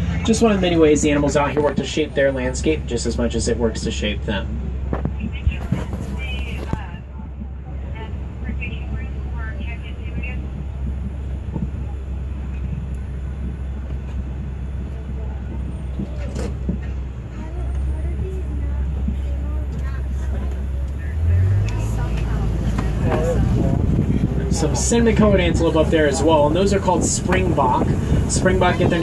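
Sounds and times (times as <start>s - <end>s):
truck engine running: 0.0s - 29.0s.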